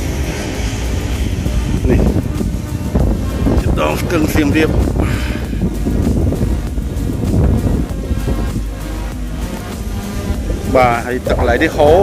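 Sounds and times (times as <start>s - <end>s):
distant music: 0.0s - 12.0s
steady low rumble: 0.0s - 12.0s.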